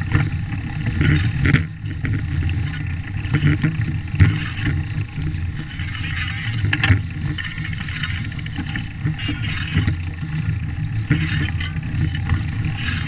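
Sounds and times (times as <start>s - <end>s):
bike knocking on bumps: 0.0s - 13.0s
bike tyre crackling through leaves: 0.0s - 13.0s
wind rumble on microphone: 0.0s - 13.0s.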